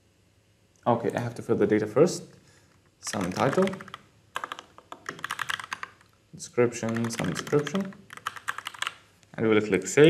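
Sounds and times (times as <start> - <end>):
keyboard typing: 3.0 - 6.1, 6.8 - 9.0.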